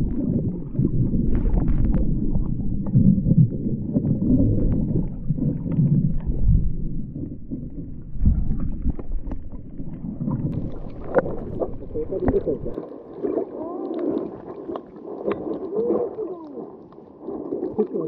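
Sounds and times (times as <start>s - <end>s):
low underwater sloshing rumble: 0.0s - 18.0s
muffled wavering voice-like tones: 11.2s - 14.5s, 15.2s - 16.9s, 17.6s - 18.0s.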